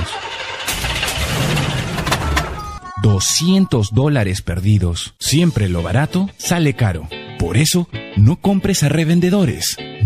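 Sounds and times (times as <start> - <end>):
car engine starting: 0.0 - 2.8.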